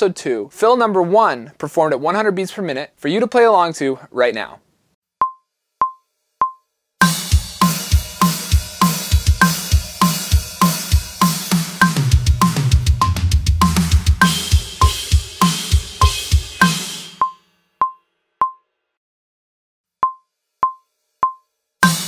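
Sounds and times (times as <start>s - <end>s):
acoustic drum kit playing: 7.0s - 17.4s, 20.6s - 22.0s
metronome click: 17.2s - 18.6s, 20.0s - 21.5s.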